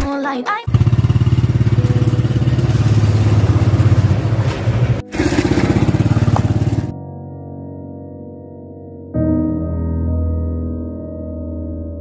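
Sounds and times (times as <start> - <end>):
motorcycle engine running: 0.7 - 6.9
soft keyboard music: 1.6 - 4.8, 6.9 - 12.0.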